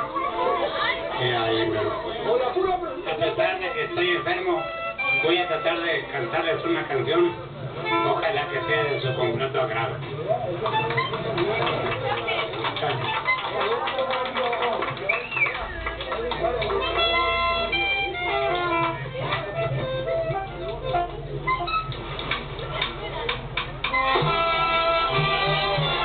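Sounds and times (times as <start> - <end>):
people talking: 0.0 - 24.3
live band playing: 7.2 - 13.8, 15.2 - 26.0
melody notes: 15.6 - 22.0.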